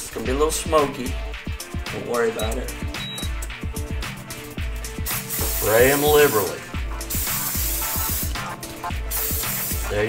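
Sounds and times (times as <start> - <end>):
background music with beat: 0.0 - 10.0
cooking spray hissing: 4.8 - 10.0.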